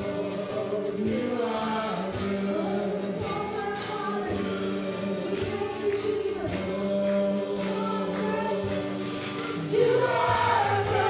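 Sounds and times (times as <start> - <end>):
acoustic guitars: 0.0 - 11.0
drum kit with cymbals: 0.0 - 11.0
voices singing together: 0.0 - 11.0.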